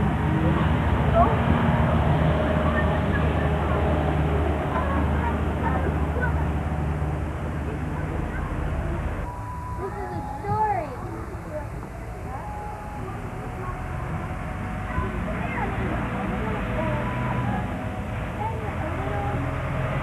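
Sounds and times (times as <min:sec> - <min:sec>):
people's voices outdoors: 0:00.0 - 0:20.0.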